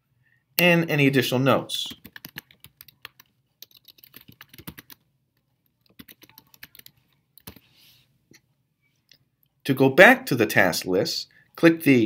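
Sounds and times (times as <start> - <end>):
typing on a computer keyboard: 1.8 - 5.1, 5.7 - 7.6.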